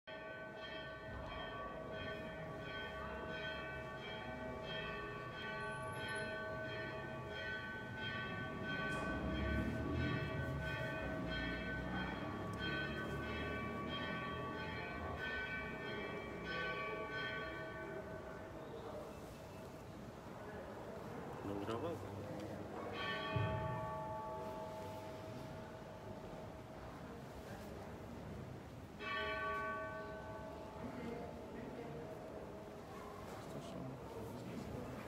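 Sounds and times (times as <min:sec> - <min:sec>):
church bells ringing: 0:00.1 - 0:20.1, 0:21.0 - 0:35.0.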